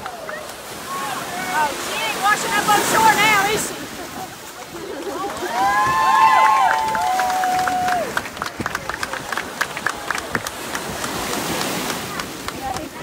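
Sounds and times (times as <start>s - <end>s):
crowd applauding: 0.0s - 1.6s, 4.6s - 13.0s
surf: 0.0s - 13.0s
wind: 0.0s - 13.0s
long drawn-out shout: 5.3s - 8.2s.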